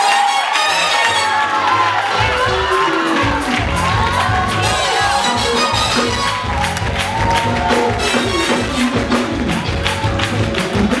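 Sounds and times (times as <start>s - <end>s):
hand clapping: 6.0s - 11.0s.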